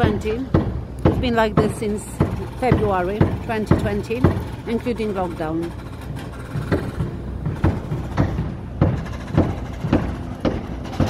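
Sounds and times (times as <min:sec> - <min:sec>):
diesel engine running: 0:00.0 - 0:11.0
regular machine knocking: 0:00.0 - 0:11.0.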